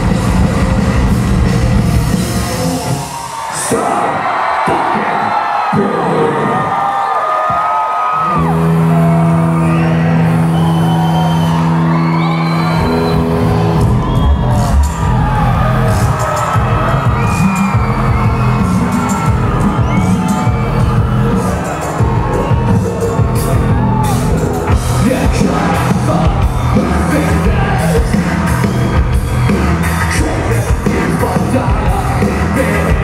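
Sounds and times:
rock band with heavy drums: 0.0 - 4.2, 7.5 - 33.0
crowd cheering and screaming: 0.0 - 33.0.

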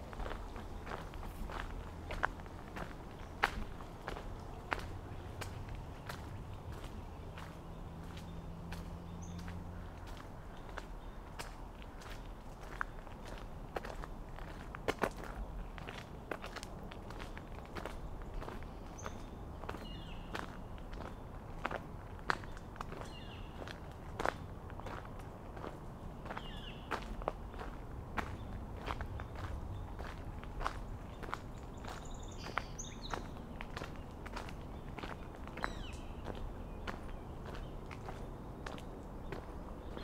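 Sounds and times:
footsteps on wet gravel: 0.0 - 40.0.

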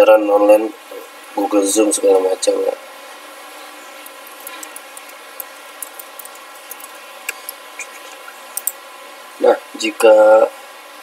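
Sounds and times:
steady background hum: 0.0 - 11.0
laptop keyboard typing: 4.0 - 8.7.

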